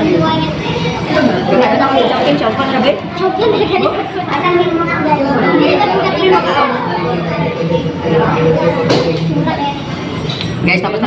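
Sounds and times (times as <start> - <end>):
restaurant chatter: 0.0 - 11.0.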